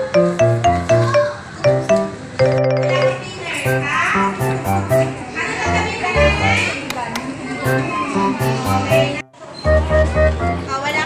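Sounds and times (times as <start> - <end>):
music with steady bass line: 3.7 - 6.7, 7.7 - 10.7
children's voices: 5.2 - 8.6.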